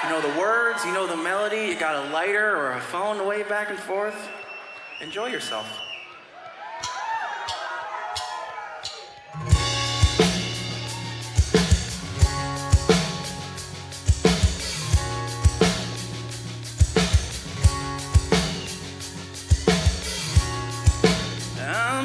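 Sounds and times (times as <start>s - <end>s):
live rock band playing: 9.4s - 22.0s
steady drum beat: 9.4s - 22.0s.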